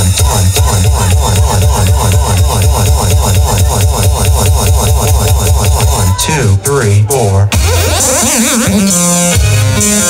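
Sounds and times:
fast repeating synthesizer figure: 0:00.0 - 0:06.7
pulsing synth bass: 0:00.0 - 0:10.0.

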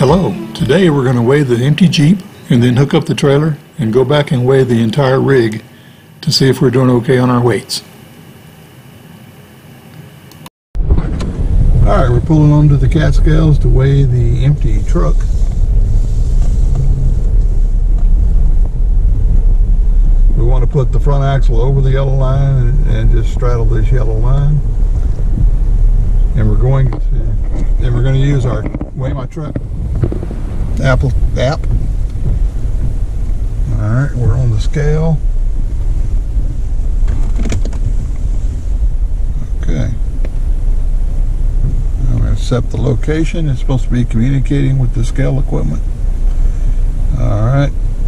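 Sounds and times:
engine low rumble: 0:00.0 - 0:05.6, 0:10.8 - 0:48.0
short faint sound: 0:15.1 - 0:20.3.

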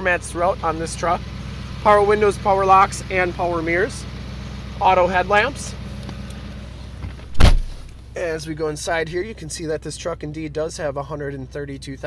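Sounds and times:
diesel engine idling: 0:00.0 - 0:12.0
truck door thump: 0:07.0 - 0:08.0.

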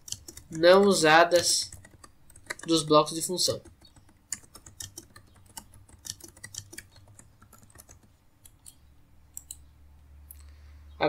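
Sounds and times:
computer mouse clicks: 0:00.0 - 0:02.9, 0:03.5 - 0:09.7
low steady hum: 0:00.0 - 0:11.0.

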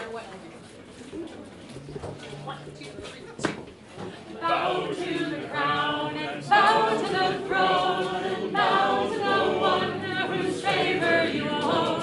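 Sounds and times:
voices singing a cappella: 0:04.4 - 0:12.0.

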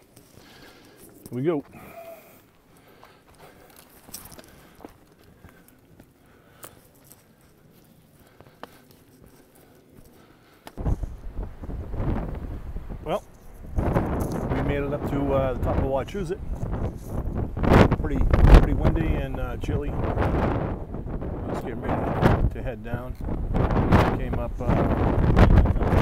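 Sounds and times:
footsteps on rocky trail: 0:00.0 - 0:12.6, 0:13.2 - 0:14.9, 0:16.4 - 0:17.9
wind buffeting microphone: 0:10.8 - 0:26.0.

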